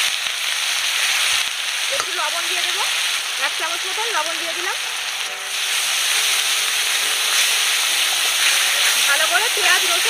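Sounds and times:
onions sizzling in oil: 0:00.0 - 0:10.0
spatula stirring in metal pan: 0:05.5 - 0:10.0.

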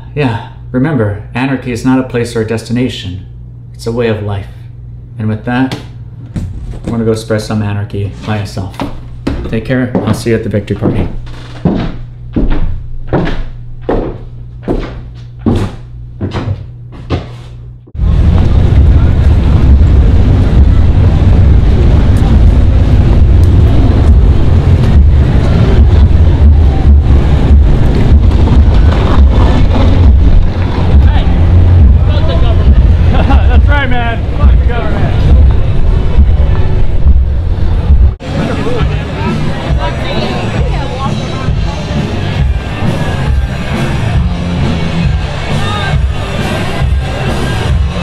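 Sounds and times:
low hum: 0:02.0 - 0:09.3, 0:11.2 - 0:48.0
knocks: 0:10.8 - 0:17.3
wind rumble on microphone: 0:18.0 - 0:33.2
passing traffic: 0:18.1 - 0:44.7
voices: 0:30.5 - 0:37.0, 0:38.2 - 0:44.1.

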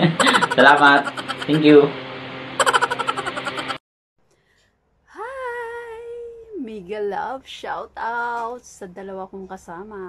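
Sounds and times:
man's voice: 0:00.0 - 0:01.9
woman singing a long note: 0:05.1 - 0:06.6.

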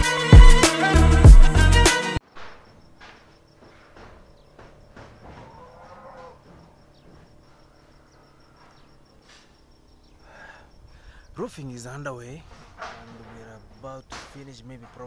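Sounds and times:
distant drawn-out animal call: 0:03.5 - 0:11.3.

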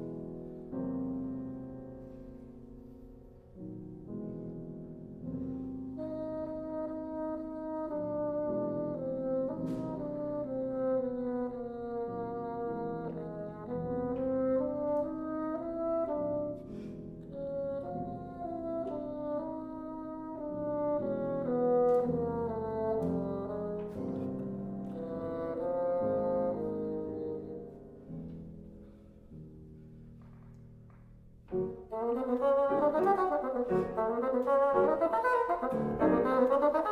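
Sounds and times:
piano accompaniment: 0:00.0 - 0:36.9
bassoon melody: 0:03.6 - 0:29.0, 0:31.5 - 0:36.9.

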